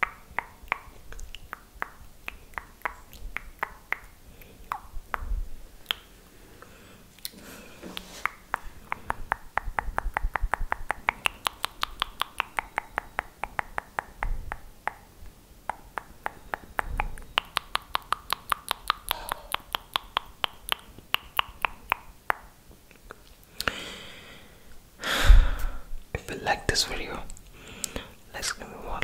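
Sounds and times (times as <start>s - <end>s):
wet mouth clicks and tongue pops: 0.0s - 6.1s, 7.2s - 15.1s, 15.7s - 23.8s.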